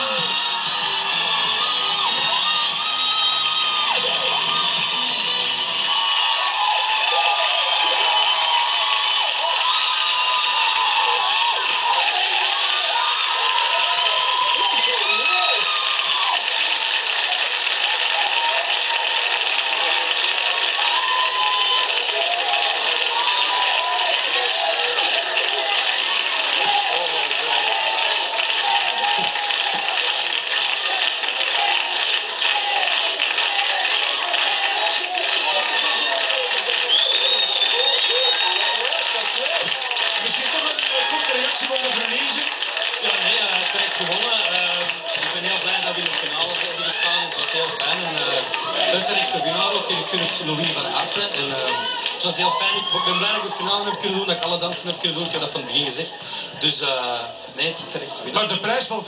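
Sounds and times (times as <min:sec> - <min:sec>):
audience cheering and shouting: 0:00.0 - 0:59.0.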